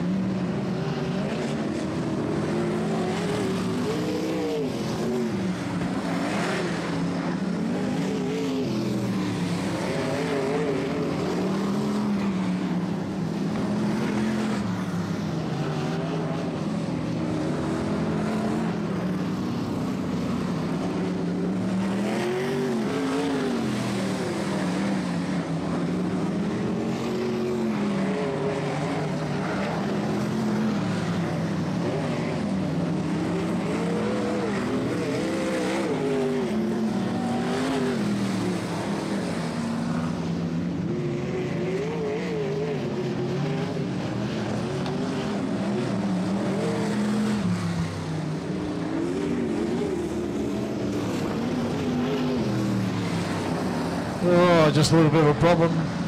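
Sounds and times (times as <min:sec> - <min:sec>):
racing car engines: 0:00.0 - 0:56.0.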